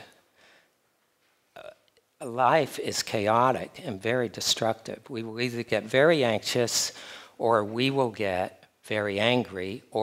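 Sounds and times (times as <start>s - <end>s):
man breathing: 0.1s - 0.8s, 7.0s - 7.4s.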